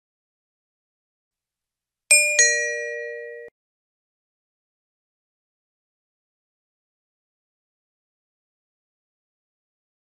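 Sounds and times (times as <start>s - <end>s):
two-note electronic chime: 2.1s - 3.5s.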